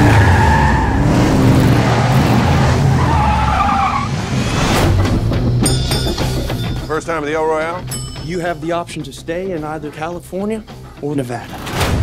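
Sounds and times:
tyres squealing: 0:01.8 - 0:04.2.

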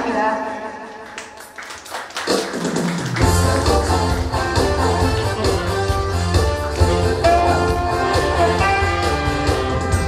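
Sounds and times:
live band playing: 0:02.3 - 0:10.0.

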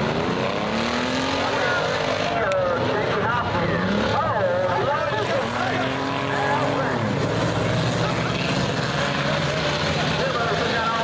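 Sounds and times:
race car engines revving: 0:00.0 - 0:11.0
people's voices: 0:01.1 - 0:11.0.

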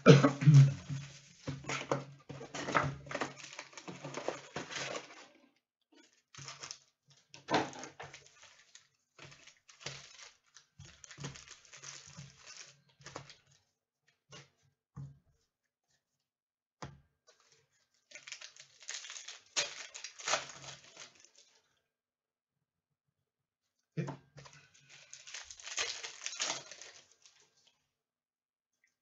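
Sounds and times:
card packaging rustling and crinkling: 0:00.4 - 0:05.4, 0:06.0 - 0:13.7, 0:17.3 - 0:21.8, 0:24.4 - 0:27.7.

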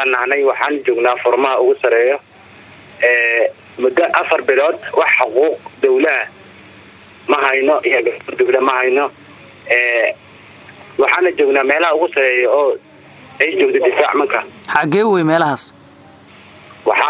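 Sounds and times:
person talking: 0:14.6 - 0:15.7.

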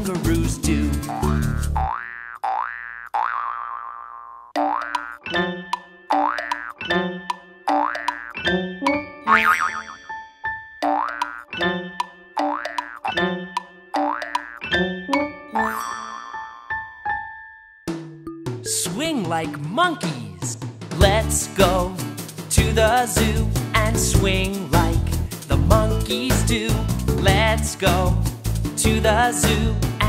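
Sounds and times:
bouncy children's song music: 0:00.0 - 0:01.9, 0:10.8 - 0:30.0
cartoon boing spring effects: 0:01.1 - 0:10.2, 0:10.8 - 0:14.8.

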